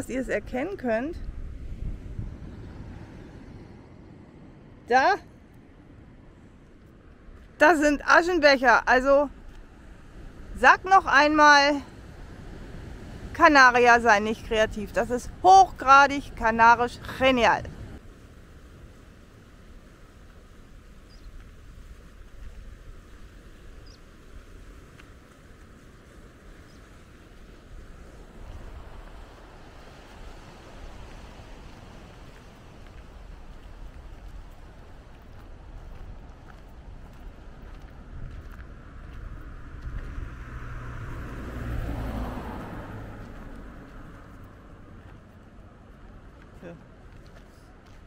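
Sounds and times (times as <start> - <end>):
car passing: 0.0 - 8.4, 9.3 - 19.5, 23.8 - 47.9
sea: 0.0 - 48.0
wind rumbling on microphone: 0.0 - 48.0.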